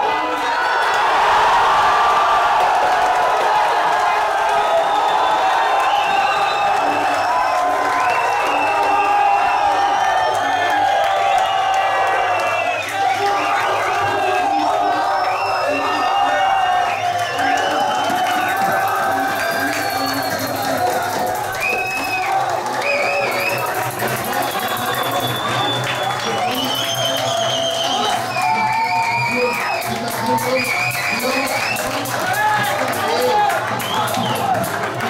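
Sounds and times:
crowd cheering and shouting: 0.0s - 35.0s
crowd clapping: 0.0s - 35.0s
music: 16.6s - 35.0s.

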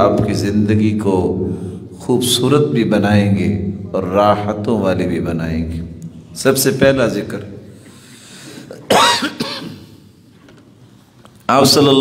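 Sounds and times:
man clearing his throat: 8.6s - 10.0s.

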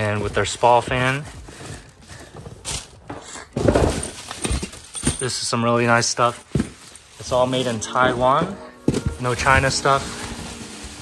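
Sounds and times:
bubble wrap crinkling against cardboard: 0.0s - 11.0s.

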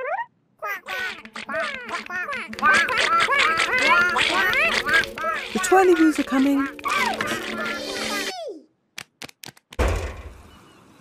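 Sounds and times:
cartoon birds chattering squeakily: 0.0s - 8.5s.

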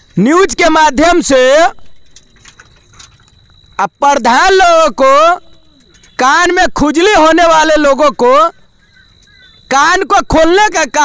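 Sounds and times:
faint clicking and rattling: 0.0s - 3.8s, 5.3s - 6.3s
person speaking: 0.1s - 2.0s, 3.8s - 8.6s, 9.7s - 11.0s.

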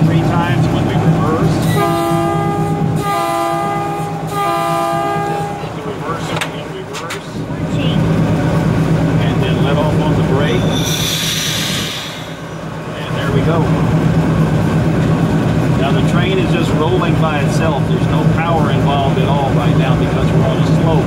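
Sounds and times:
diesel engine drone: 0.0s - 21.0s
locomotive air horn blasts: 1.6s - 6.1s.

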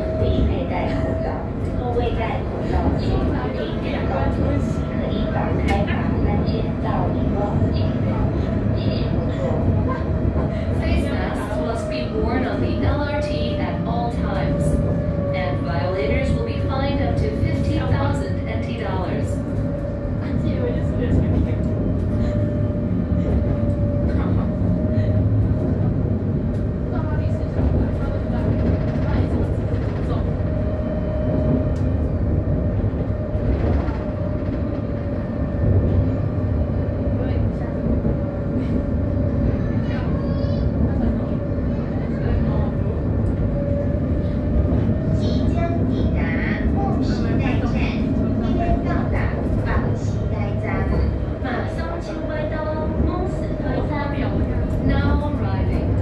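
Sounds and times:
faint passenger voices: 0.0s - 56.0s
steady tram whine: 0.0s - 56.0s
tram wheels rumbling: 0.0s - 56.0s.

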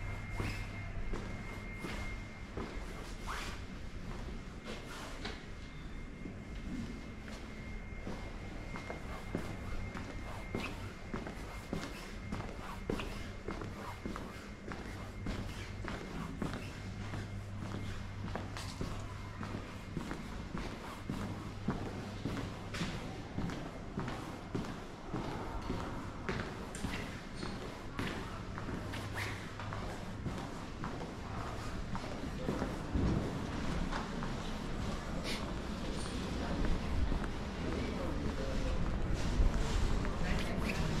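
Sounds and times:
low steady hum: 0.0s - 41.0s.

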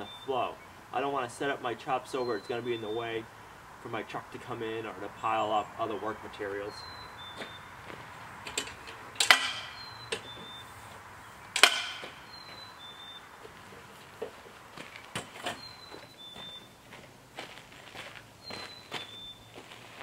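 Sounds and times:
metal frame clicks and rattles: 8.4s - 10.5s, 11.5s - 12.2s
metallic clanks ringing: 8.5s - 10.5s, 11.6s - 12.4s.

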